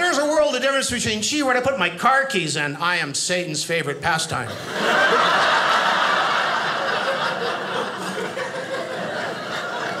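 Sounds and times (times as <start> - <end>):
audience laughing: 4.5 - 10.0.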